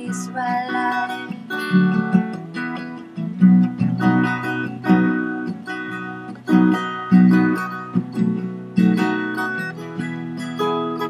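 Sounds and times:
strummed acoustic guitar chords: 0.0 - 11.0.

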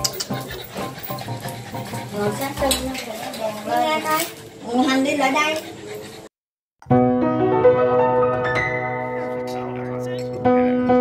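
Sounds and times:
dog sounds: 0.0 - 6.3.

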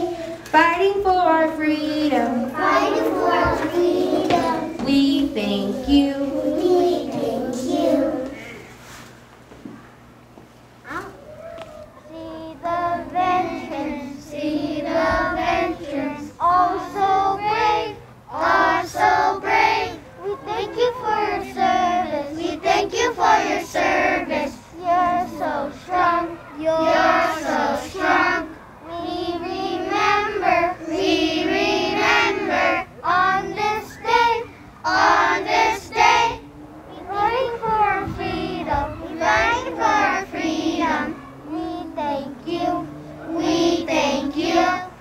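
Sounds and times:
children singing: 0.0 - 0.3, 2.0 - 8.4, 12.1 - 36.4, 37.0 - 45.0.

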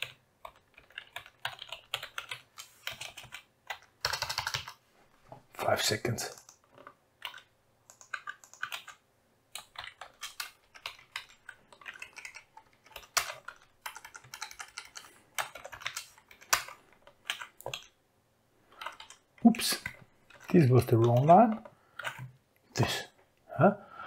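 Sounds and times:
typing on computer keyboard: 0.0 - 4.8, 6.2 - 18.0, 18.7 - 22.3.

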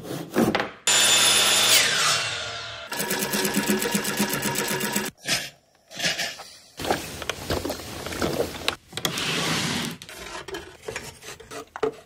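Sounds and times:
sewing machine stitching: 2.9 - 5.1.

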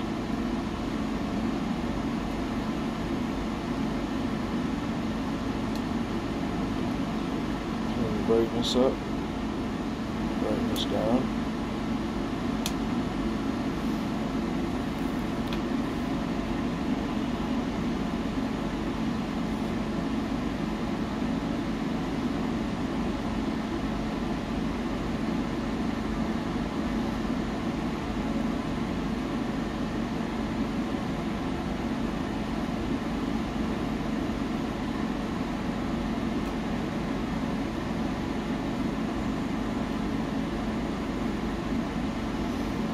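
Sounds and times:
wood stove rushing hum: 0.0 - 42.9.

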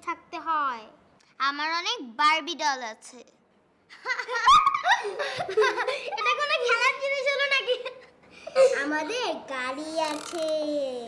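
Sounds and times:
children laughing: 3.9 - 9.1.

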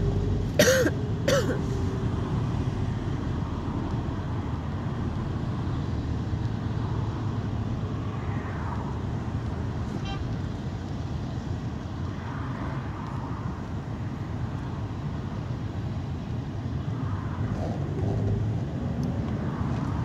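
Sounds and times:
bus engine and road rumble: 0.0 - 20.0
passing traffic: 0.0 - 20.0.

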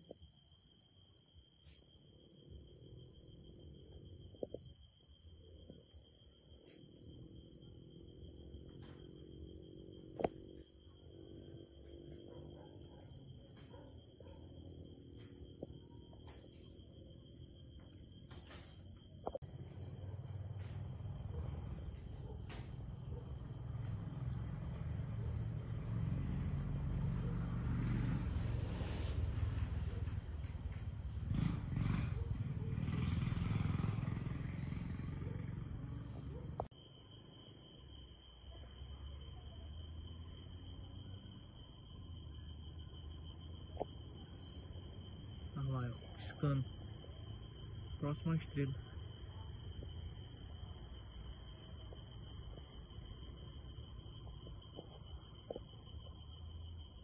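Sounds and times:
night insects chirring: 0.0 - 57.0.

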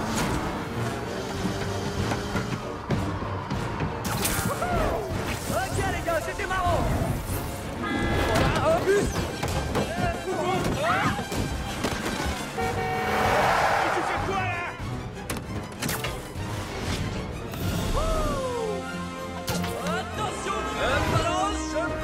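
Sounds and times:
city street noise: 0.0 - 16.2
action film music: 0.0 - 22.0
car horn: 7.8 - 8.4, 12.3 - 14.2
car rushing past: 12.6 - 14.4.

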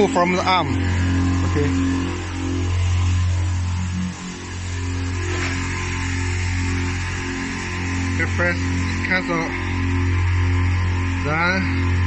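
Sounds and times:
pump humming with higher tones: 0.0 - 12.0.

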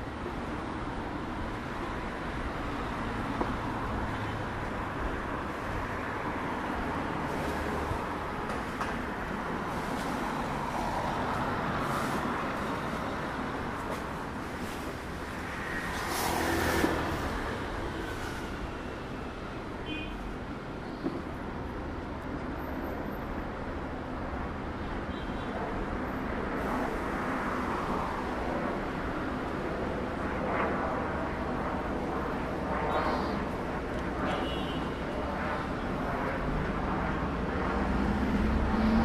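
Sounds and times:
cars passing: 0.1 - 25.0, 25.6 - 39.0.

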